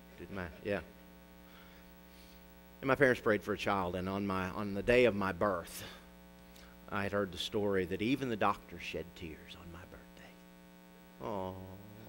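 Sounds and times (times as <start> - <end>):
man speaking: 0.0 - 1.0, 2.8 - 6.0, 6.9 - 10.4, 11.2 - 12.0
low electrical hum with hiss: 0.0 - 12.0.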